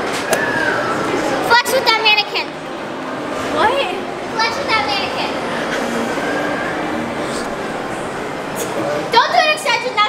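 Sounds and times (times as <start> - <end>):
continuous hiss and rumble: 0.0 - 10.0.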